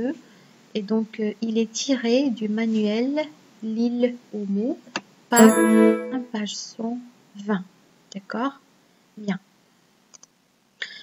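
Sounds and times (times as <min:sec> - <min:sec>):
person speaking: 0:05.4 - 0:06.3.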